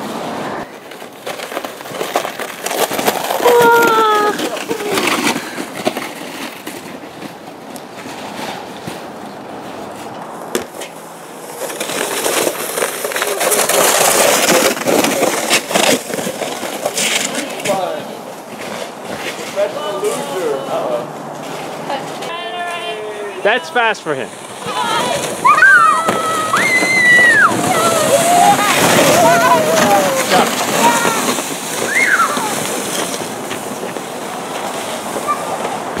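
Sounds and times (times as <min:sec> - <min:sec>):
sled scraping over snow: 0:00.0 - 0:36.0
people shouting and squealing: 0:03.4 - 0:05.1, 0:24.6 - 0:32.6.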